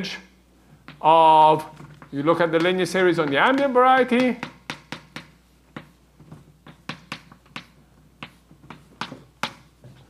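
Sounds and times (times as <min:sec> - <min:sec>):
chalk tapping on blackboard: 0:02.0 - 0:06.0, 0:06.6 - 0:09.8.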